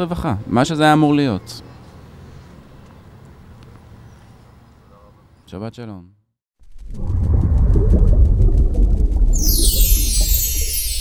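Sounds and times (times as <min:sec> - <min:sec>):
deep rumble: 0:06.6 - 0:10.7
shimmering chime: 0:09.4 - 0:11.0.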